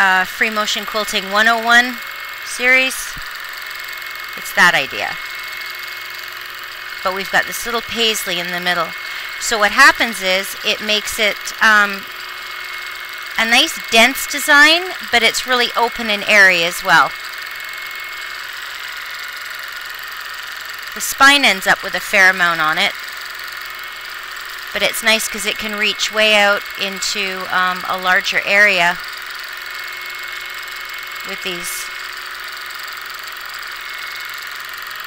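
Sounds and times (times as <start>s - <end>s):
thin high whine: 0.0s - 12.3s, 24.0s - 32.2s
quilting machine humming: 0.0s - 35.0s.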